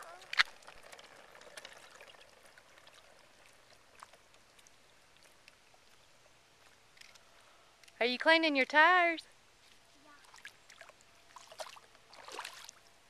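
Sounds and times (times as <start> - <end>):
water splashing and trickling: 0.0 - 7.9, 9.5 - 13.0
small water ticks: 0.0 - 8.0, 9.6 - 12.9.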